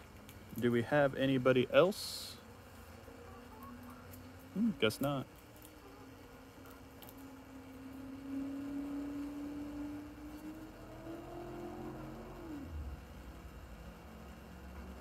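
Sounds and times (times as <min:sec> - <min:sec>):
engine hum rising in pitch: 0:05.8 - 0:15.0.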